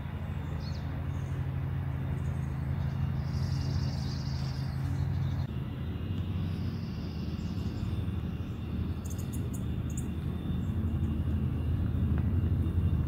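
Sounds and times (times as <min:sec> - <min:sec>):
low rumble: 0:00.0 - 0:13.0.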